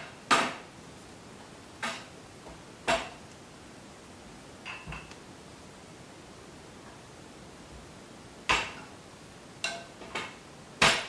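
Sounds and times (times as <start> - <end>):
metal baking pans clanking: 9.6 - 11.0.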